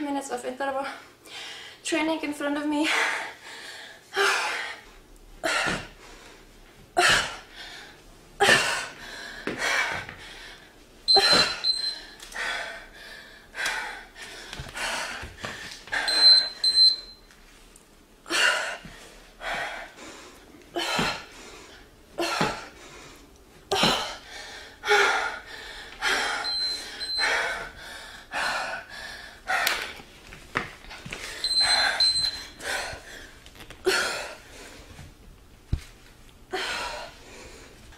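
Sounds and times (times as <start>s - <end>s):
woman breathing hard and gasping: 2.8s - 10.8s, 11.4s - 16.7s, 18.2s - 30.0s, 30.9s - 35.0s, 36.5s - 37.8s
short high electronic beeps: 16.1s - 17.2s, 31.4s - 32.4s.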